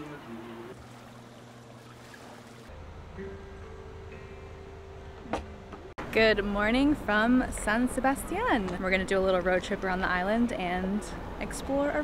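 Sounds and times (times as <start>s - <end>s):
steady low hum: 0.3s - 11.5s.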